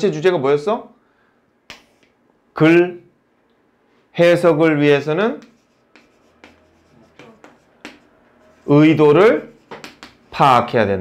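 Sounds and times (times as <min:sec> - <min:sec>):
chalk tapping and scraping on board: 0:01.7 - 0:02.2, 0:05.2 - 0:10.7.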